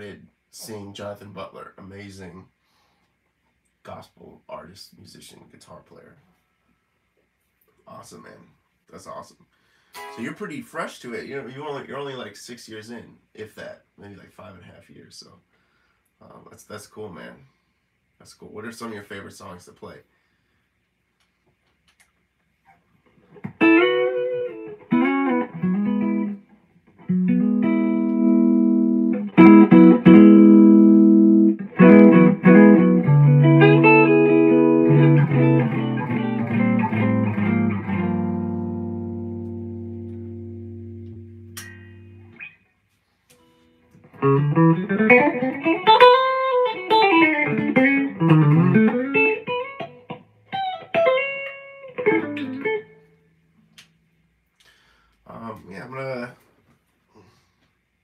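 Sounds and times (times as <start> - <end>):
electric guitar playing: 10.0 - 10.5, 23.3 - 42.6, 43.4 - 53.2.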